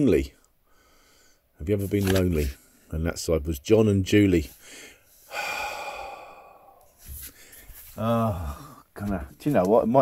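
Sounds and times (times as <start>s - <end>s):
man sighing: 5.3s - 6.9s, 8.0s - 8.9s.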